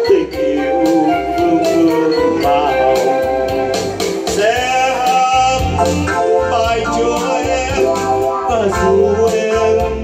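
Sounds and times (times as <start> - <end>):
electronic keyboard: 0.0 - 10.0
man singing through microphone: 0.0 - 10.0.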